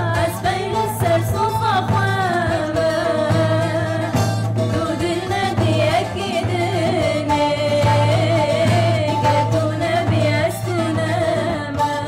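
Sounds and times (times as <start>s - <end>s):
strummed saz: 0.0s - 12.0s
women singing together: 0.0s - 12.0s.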